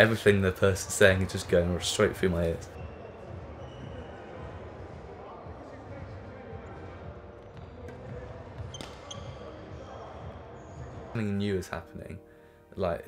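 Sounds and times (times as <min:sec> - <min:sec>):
shoe squeaks: 0:02.8 - 0:04.4, 0:07.4 - 0:11.2.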